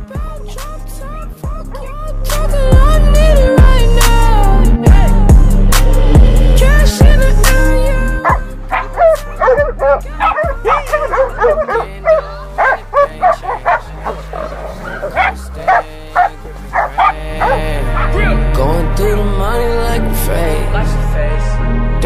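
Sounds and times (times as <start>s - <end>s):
music with steady bass line: 0.0s - 22.0s
dogs barking and yelping: 8.2s - 18.4s.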